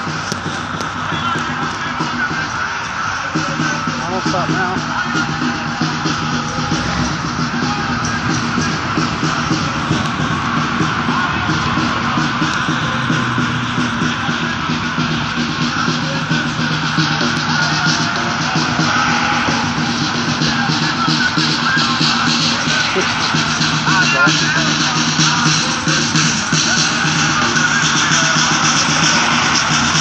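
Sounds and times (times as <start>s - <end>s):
loud church music: 0.0s - 30.0s.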